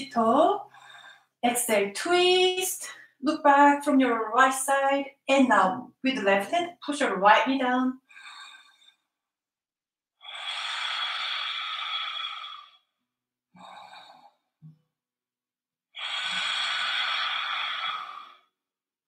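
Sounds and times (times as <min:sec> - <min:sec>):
woman breathing deeply: 0:00.7 - 0:01.4, 0:08.1 - 0:09.1, 0:10.2 - 0:12.9, 0:13.6 - 0:14.5, 0:16.0 - 0:18.5.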